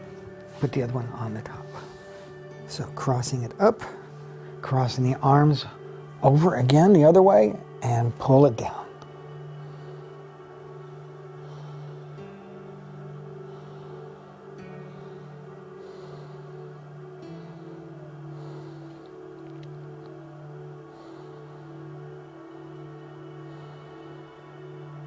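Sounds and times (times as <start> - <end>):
soft droning ambient chords: 0.0 - 25.0.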